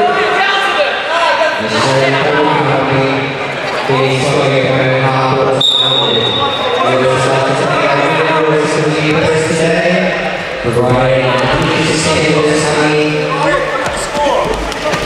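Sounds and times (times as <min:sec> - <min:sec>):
voices calling out in hall: 0:00.0 - 0:15.0
referee's whistle blast: 0:05.6 - 0:06.8.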